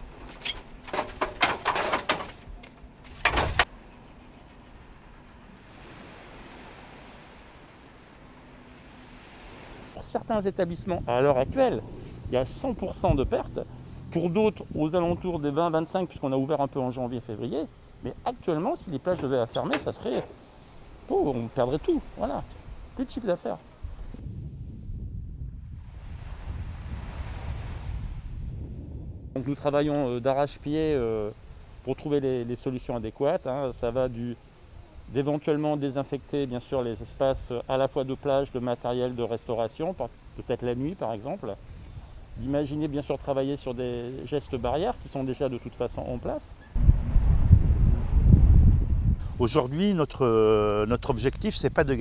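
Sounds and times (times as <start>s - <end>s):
sun loungers clattering: 0.0s - 3.7s, 18.9s - 21.0s
soft open-air hiss: 2.4s - 24.2s, 29.4s - 46.8s
small waves washing on sand: 5.5s - 10.0s, 25.8s - 28.3s
wind rumble on microphone: 9.2s - 15.5s, 23.7s - 30.0s, 46.6s - 49.6s.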